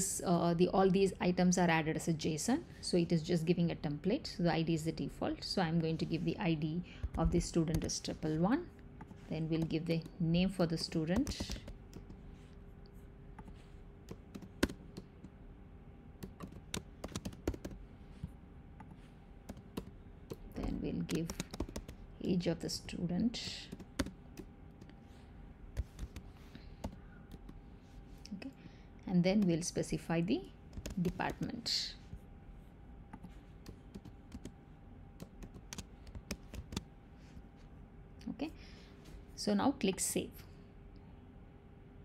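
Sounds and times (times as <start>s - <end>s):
keys clicking on a keyboard: 16.2s - 17.8s.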